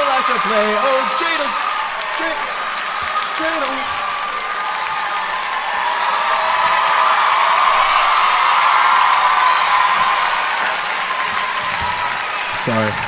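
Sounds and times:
crowd clapping: 0.0s - 13.0s
crowd voices: 0.0s - 13.0s.

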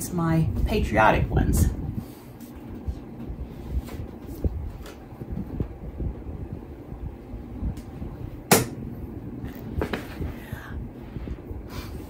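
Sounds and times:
sharp knock: 8.5s - 8.8s.

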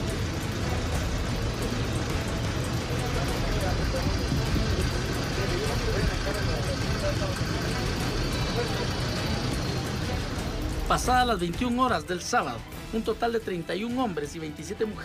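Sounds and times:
crowd talking: 0.0s - 15.0s
idling vehicles rumbling: 0.0s - 15.0s.

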